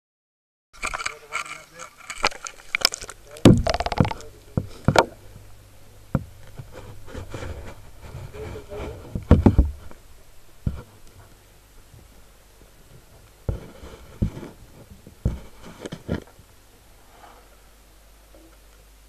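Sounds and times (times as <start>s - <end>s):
muffled water noise: 0.8s - 17.8s
camera knocking and clicking: 2.8s - 4.2s.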